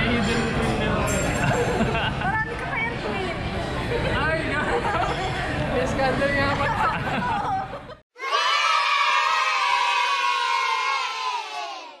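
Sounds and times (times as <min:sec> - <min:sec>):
crowd of children cheering: 0:08.2 - 0:12.0.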